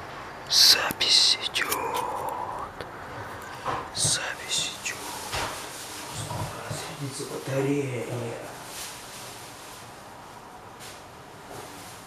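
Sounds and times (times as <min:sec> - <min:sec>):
person whispering: 0:00.5 - 0:02.8, 0:03.9 - 0:07.4.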